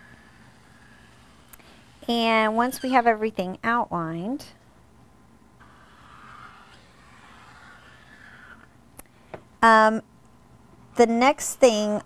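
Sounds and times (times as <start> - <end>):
marker scratching on paper: 5.6 - 8.6.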